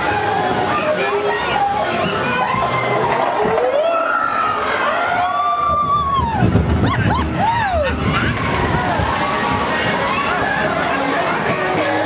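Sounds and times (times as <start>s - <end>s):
water sloshing and rushing: 0.0s - 12.0s.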